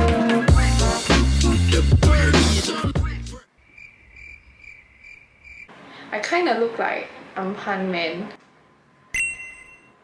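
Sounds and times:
high-pitched chirping: 0:03.7 - 0:05.7.

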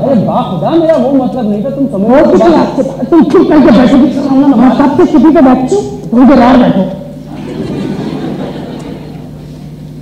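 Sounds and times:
background noise haze: 0:00.0 - 0:10.0
steady low hum: 0:00.0 - 0:10.0.

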